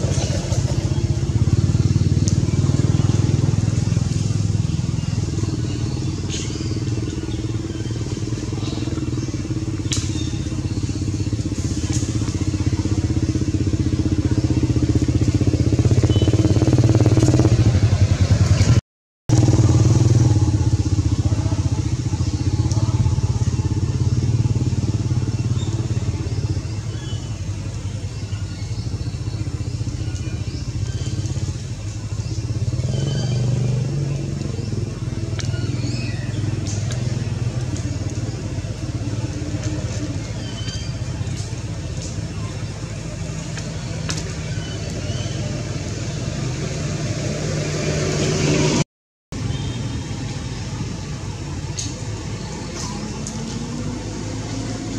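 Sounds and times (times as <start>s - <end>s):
low engine drone: 0.0s - 54.9s.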